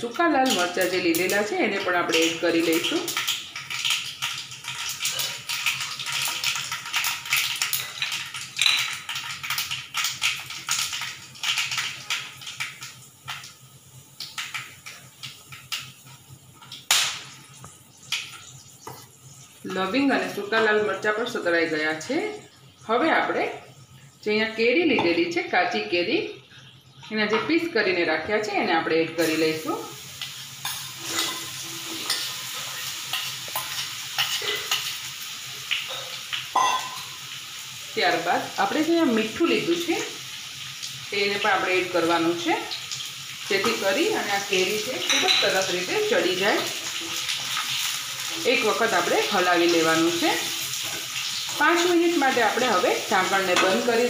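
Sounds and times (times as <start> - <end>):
spices sizzling in hot oil: 0.0 - 54.0.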